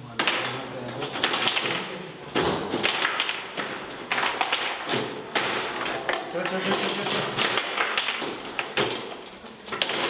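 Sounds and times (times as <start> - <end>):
foosball players clacking: 0.0 - 10.0.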